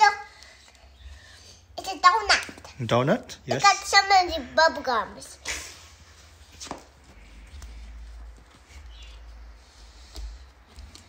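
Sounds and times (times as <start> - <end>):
stickers peeling and rustling: 6.3 - 11.0.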